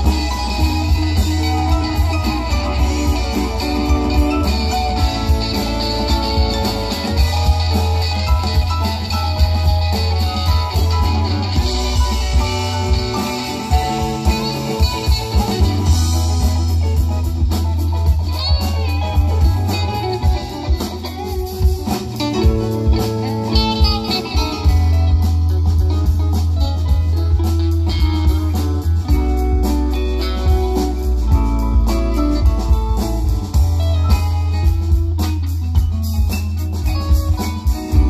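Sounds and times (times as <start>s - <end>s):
live rock band playing: 0.0s - 38.0s.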